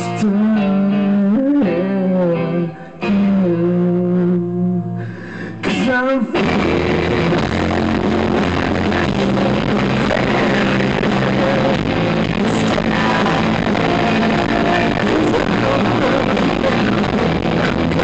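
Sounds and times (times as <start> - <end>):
live rock band playing: 0.0 - 5.0, 5.6 - 18.0.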